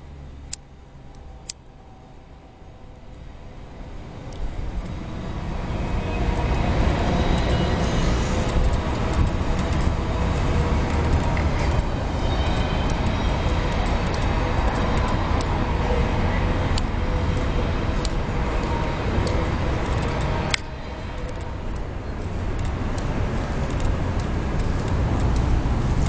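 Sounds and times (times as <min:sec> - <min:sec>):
low vehicle rumble: 0:00.0 - 0:26.0.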